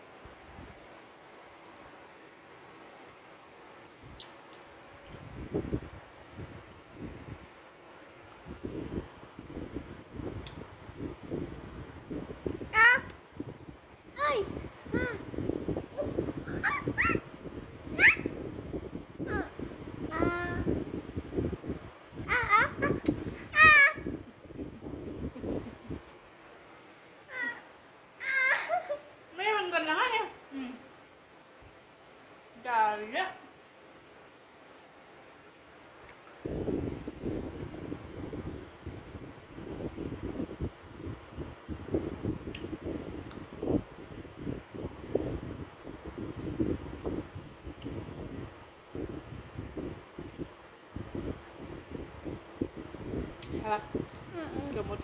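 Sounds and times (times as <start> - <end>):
low rumbling on microphone: 8.2 - 26.3, 36.4 - 55.0
high-pitched animal squeaks: 16.5 - 17.2, 18.0 - 18.3.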